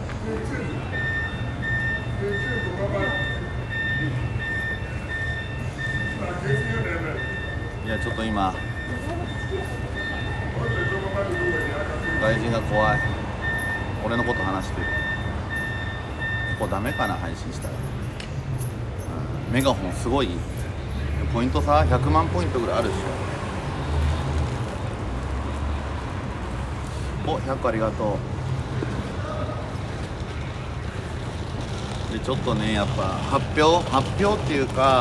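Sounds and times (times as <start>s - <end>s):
low rumble of traffic: 0.0s - 35.0s.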